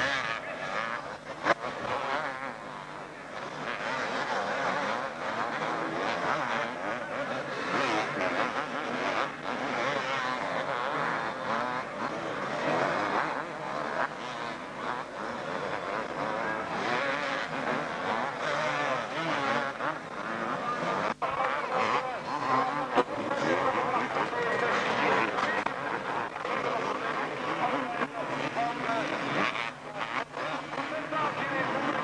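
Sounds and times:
motocross bikes racing: 0:00.0 - 0:32.0.

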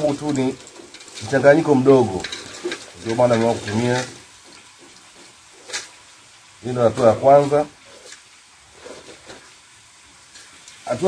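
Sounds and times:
light gritty scraping: 0:00.0 - 0:11.0.

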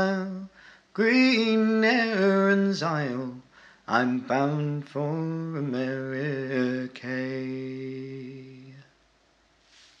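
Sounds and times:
faint soft hiss: 0:00.0 - 0:10.0.

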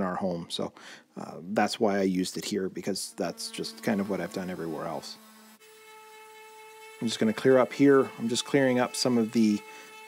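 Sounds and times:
electric sander whining: 0:03.0 - 0:10.0.

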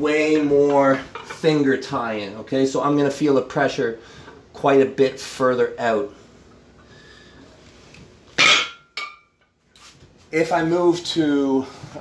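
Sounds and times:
loud burst of breath: 0:06.9 - 0:07.5
dumbbell clanking down: 0:08.4 - 0:09.3.

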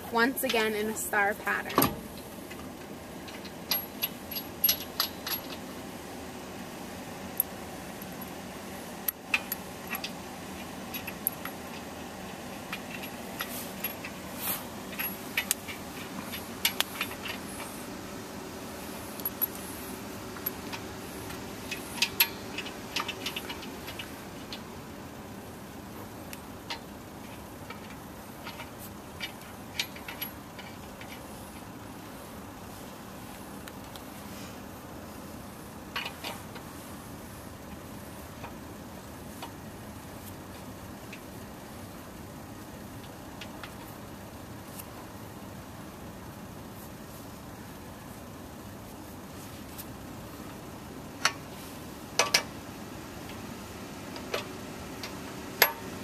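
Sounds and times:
steady background hum: 0:00.0 - 0:56.0
wrench and nuts clinking: 0:03.3 - 0:05.7, 0:09.0 - 0:17.8, 0:18.9 - 0:24.6, 0:26.7 - 0:31.7, 0:54.2 - 0:55.9.

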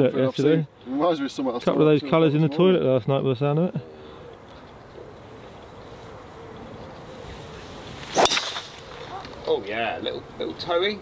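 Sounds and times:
golf club swing whoosh: 0:07.7 - 0:09.1
golf club striking ball: 0:08.0 - 0:09.2.

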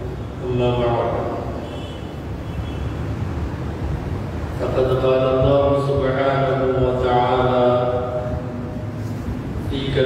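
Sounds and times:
man chanting: 0:04.6 - 0:08.7.

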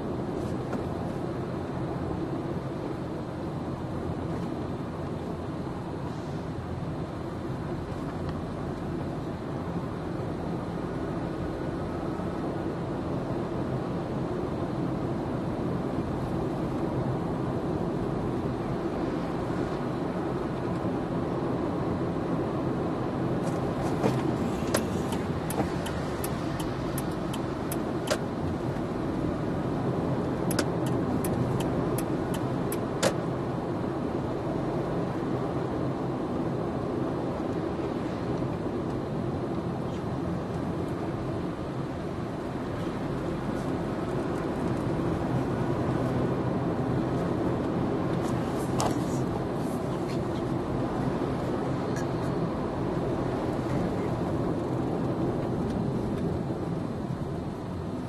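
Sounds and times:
car engine and road noise: 0:00.0 - 0:58.0
sharp ticks: 0:24.7 - 0:28.2.

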